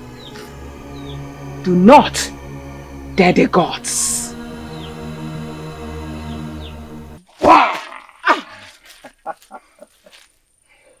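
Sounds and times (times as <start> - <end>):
background music: 0.0 - 7.3
startled cry: 7.4 - 9.6
bursts of laughter: 7.7 - 10.3.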